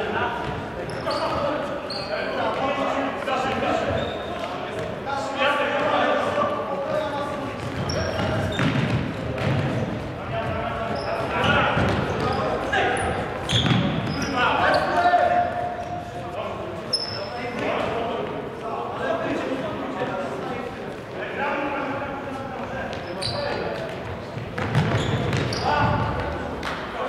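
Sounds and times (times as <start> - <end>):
shoes squeaking on floor: 0.4 - 5.0, 6.9 - 16.1, 16.8 - 17.9, 22.6 - 26.4.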